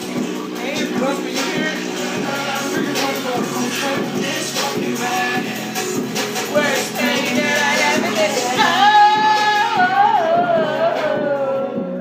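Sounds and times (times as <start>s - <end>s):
backing track with beat: 0.0s - 12.0s
woman singing into microphone: 7.0s - 12.0s.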